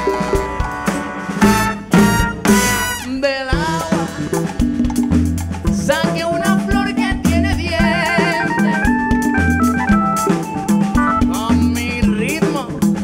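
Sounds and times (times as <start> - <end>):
live band playing latin groove: 0.0 - 13.0
pulsing bass line: 3.6 - 13.0.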